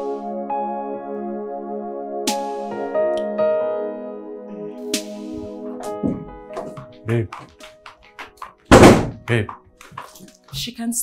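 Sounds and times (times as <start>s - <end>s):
faint background music: 2.2s - 11.0s
door shutting thunk: 6.0s - 6.8s, 8.7s - 9.2s.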